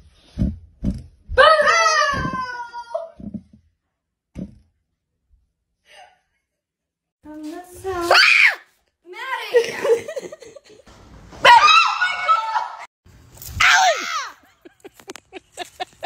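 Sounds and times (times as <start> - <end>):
women screaming: 11.5 - 12.9, 13.6 - 14.5.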